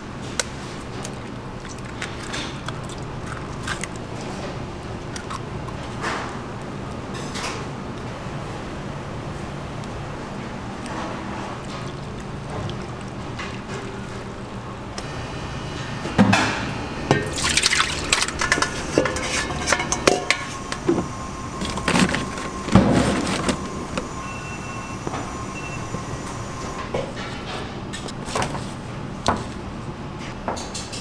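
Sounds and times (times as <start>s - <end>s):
kitchen hum: 0.0s - 31.0s
liquid pouring and splashing: 10.7s - 14.6s, 17.1s - 19.8s.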